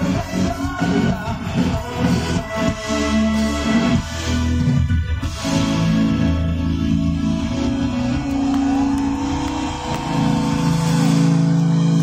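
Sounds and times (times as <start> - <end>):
rock band sustained chord: 4.6 - 12.0.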